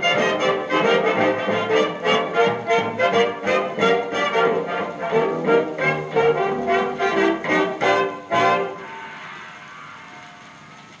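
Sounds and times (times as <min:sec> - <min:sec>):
brass band chords on old record: 0:00.0 - 0:09.2
faint record hiss: 0:00.0 - 0:11.0.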